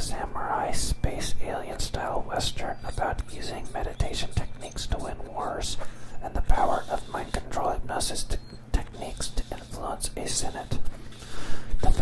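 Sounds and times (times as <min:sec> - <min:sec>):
close whispered speech: 0:00.0 - 0:10.9, 0:11.8 - 0:12.0.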